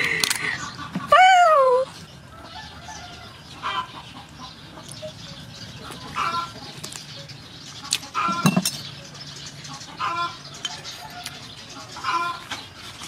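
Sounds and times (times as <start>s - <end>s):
chickens clucking: 0.0s - 13.0s.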